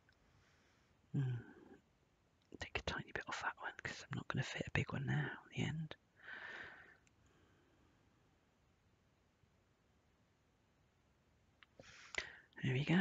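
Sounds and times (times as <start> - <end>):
woman muttering and whispering: 1.2 - 1.7, 2.6 - 6.0, 12.2 - 13.0
breathy hiss: 11.8 - 12.5.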